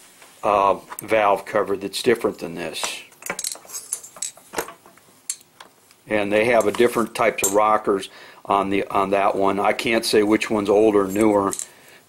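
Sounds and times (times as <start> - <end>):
metal parts clicking and clinking: 3.2 - 5.5, 6.5 - 7.7, 11.1 - 11.7.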